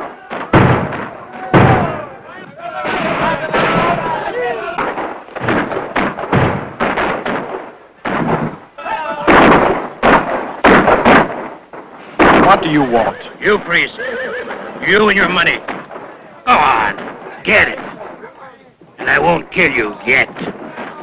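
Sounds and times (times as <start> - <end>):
voices: 0.0 - 5.5, 8.6 - 10.0, 12.0 - 21.0.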